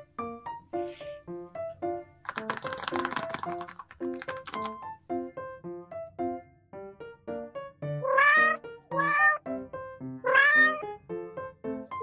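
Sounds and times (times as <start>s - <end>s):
fingernails tapping on paper pages: 2.3s - 4.8s.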